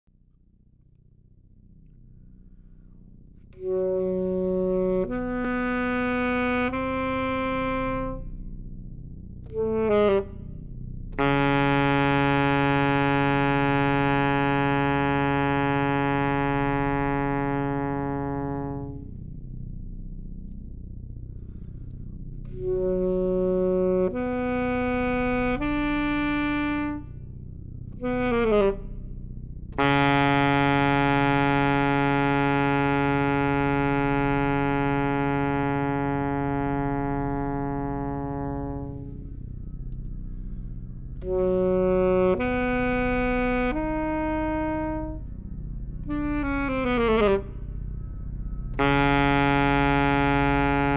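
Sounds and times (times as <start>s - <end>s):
saxophone holding a low note: 3.5s - 8.6s, 9.4s - 19.3s, 21.3s - 50.9s
electronic drone chord: 3.5s - 50.9s.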